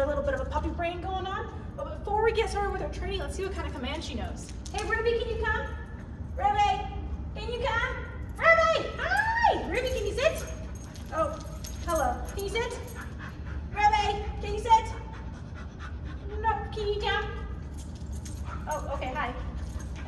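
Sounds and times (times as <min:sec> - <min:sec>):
puppy panting: 0:11.9 - 0:17.6.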